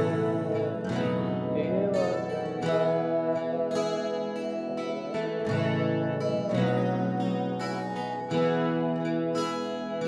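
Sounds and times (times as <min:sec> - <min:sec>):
acoustic guitar strummed and picked: 0:00.0 - 0:10.0.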